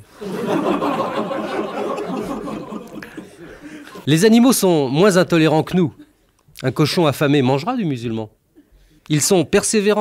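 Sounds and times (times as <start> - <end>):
laughter: 0.2 - 4.1.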